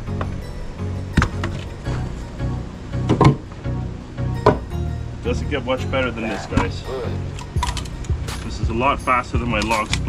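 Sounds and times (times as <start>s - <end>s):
background music with beat: 0.0s - 10.0s
firewood knocking together: 4.4s - 4.7s.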